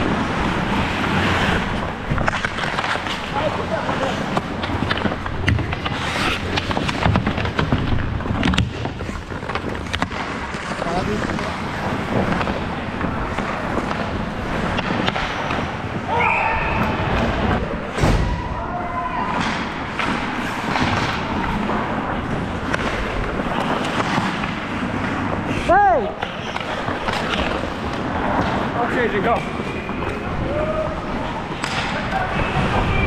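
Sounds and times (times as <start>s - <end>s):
hockey stick clacks: 0.0s - 16.0s, 19.4s - 25.6s, 26.2s - 30.2s, 31.5s - 33.0s
skate blades scraping ice: 0.0s - 18.1s, 19.3s - 33.0s.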